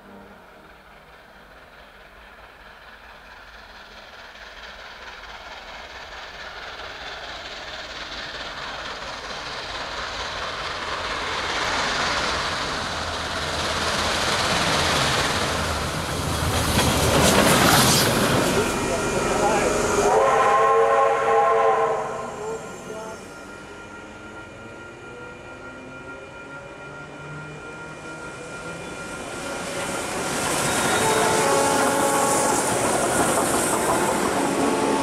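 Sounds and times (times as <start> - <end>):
steam locomotive approaching: 0.0 - 35.0.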